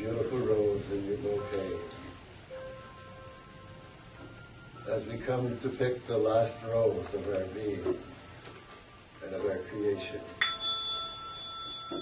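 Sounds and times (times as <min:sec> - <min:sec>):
metal chime ringing: 0:10.4 - 0:12.0.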